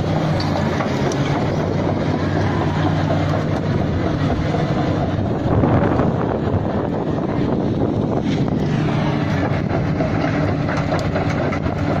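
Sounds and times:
excavator diesel engine running: 0.0s - 12.0s.

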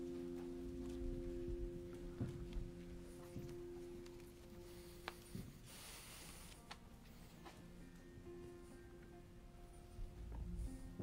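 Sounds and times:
worship band soft held notes: 0.0s - 11.0s.

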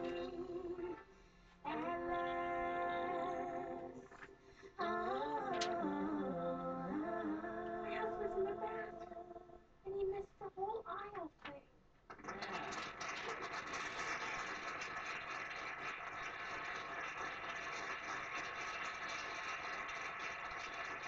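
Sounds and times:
crowd applauding: 12.1s - 21.0s.

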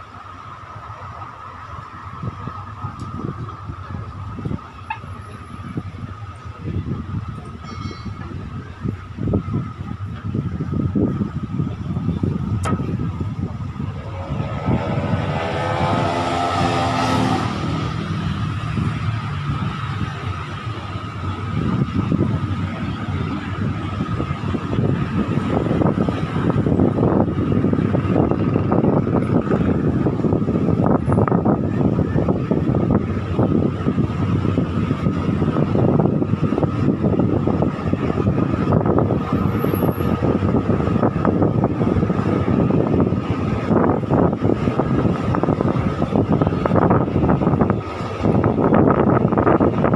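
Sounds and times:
diesel train pulling away: 0.0s - 49.9s
wind: 0.0s - 49.9s.

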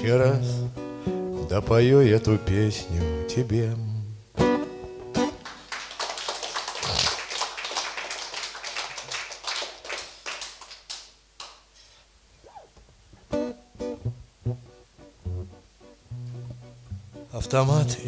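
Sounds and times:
audience clapping: 5.2s - 11.7s.

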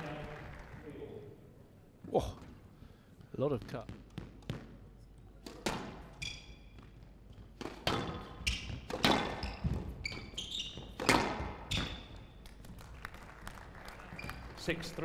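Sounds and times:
squash ball knocks: 5.4s - 6.1s, 7.5s - 10.0s, 11.0s - 12.0s
shoes squeaking on court: 5.6s - 12.4s, 14.1s - 14.4s.

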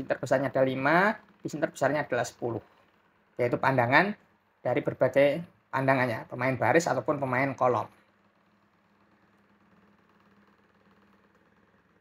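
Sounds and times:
weak low hum: 0.0s - 12.0s.

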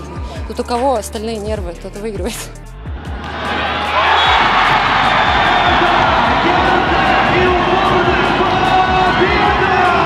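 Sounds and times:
background music with steady beat: 0.0s - 10.0s
crowd cheering: 3.0s - 10.0s.

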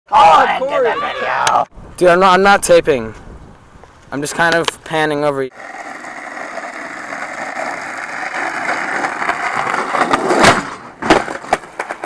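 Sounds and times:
skateboard wheels rolling on asphalt: 5.5s - 12.0s
skateboard clacking on ground: 5.6s - 12.0s.

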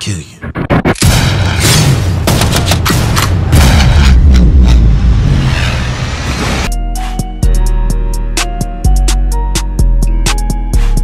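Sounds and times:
sharp crash impacts: 1.0s - 6.7s
heavy low rumble: 3.4s - 6.7s.

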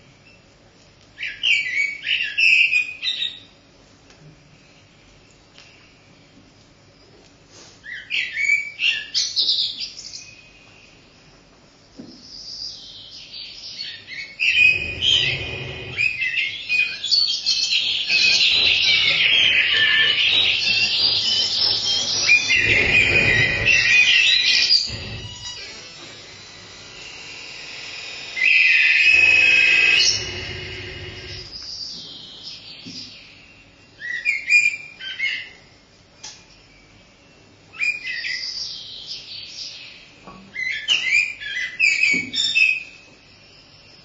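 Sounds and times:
loud steady buzzing tone: 14.4s - 16.6s, 18.1s - 31.7s
low electronic rumbles: 14.5s - 16.2s, 18.2s - 31.6s
electronic chirping glides: 14.5s - 16.3s, 18.1s - 31.6s.

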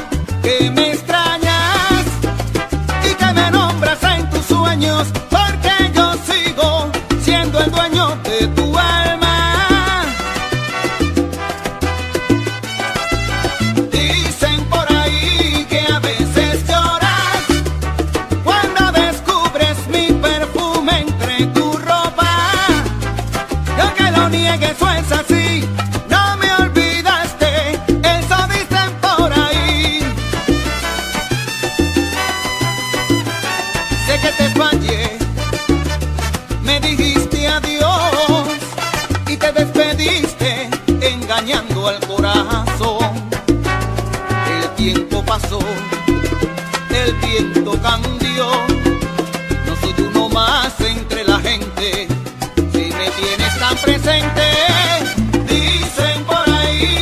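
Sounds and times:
heavy syncopated bass line: 0.0s - 57.0s
instrumental salsa music: 0.0s - 57.0s.

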